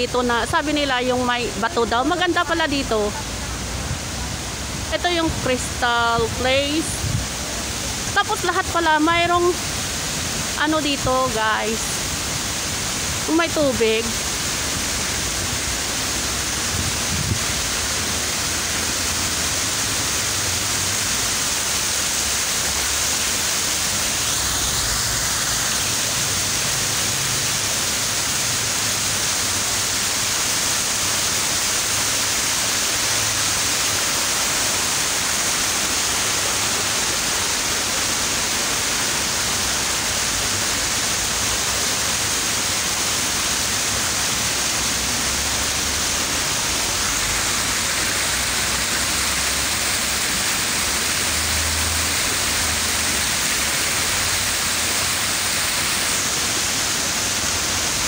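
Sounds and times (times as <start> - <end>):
waterfall pouring into pool: 3.0 - 58.0.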